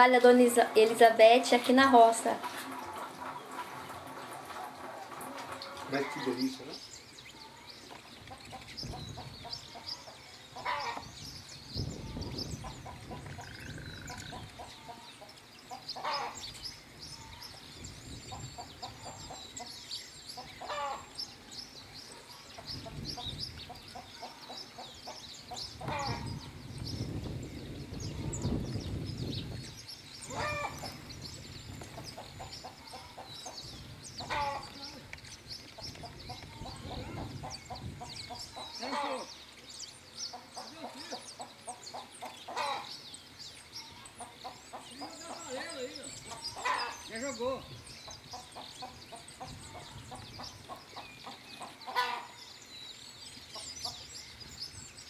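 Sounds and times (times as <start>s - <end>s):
chickens clucking: 0.0s - 11.2s, 11.8s - 27.4s, 30.2s - 39.4s, 40.2s - 47.4s, 48.0s - 52.4s, 53.4s - 54.1s
finches chirping: 5.0s - 55.0s.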